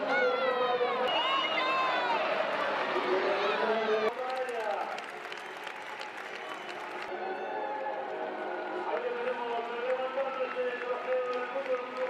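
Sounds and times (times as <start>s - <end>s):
women shouting and cheering: 0.0s - 2.6s
people clapping: 4.1s - 7.2s, 8.8s - 12.0s.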